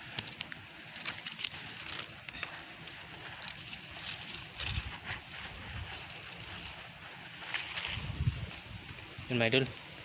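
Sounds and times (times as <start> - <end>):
dry leaves rustling and crackling: 0.0 - 10.0.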